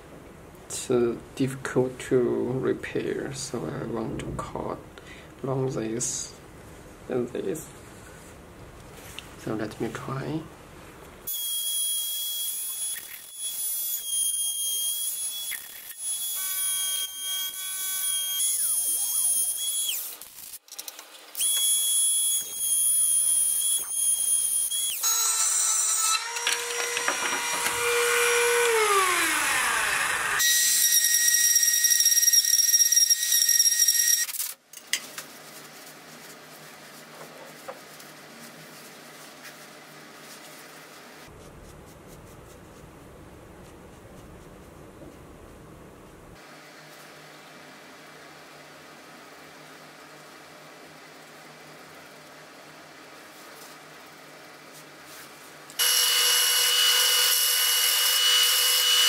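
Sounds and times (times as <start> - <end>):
high-speed power tool whine: 14.2 - 20.6, 21.4 - 34.4, 55.8 - 59.0.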